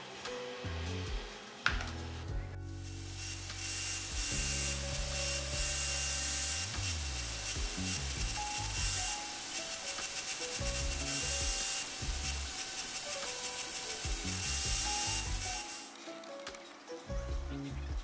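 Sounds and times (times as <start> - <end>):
background music: 0.0 - 18.0
bolt grinding on bench grinder: 2.8 - 16.0.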